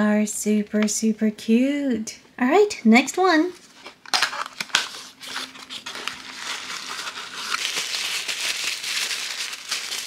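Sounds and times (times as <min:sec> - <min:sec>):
tissue paper crinkling: 0:03.6 - 0:10.0.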